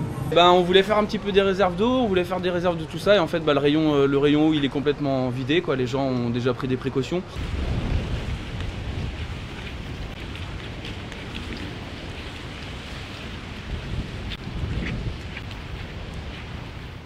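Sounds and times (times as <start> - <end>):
low rumble: 0.0 - 3.1, 7.4 - 17.0
rain on wet pavement: 0.0 - 6.3, 7.4 - 17.0.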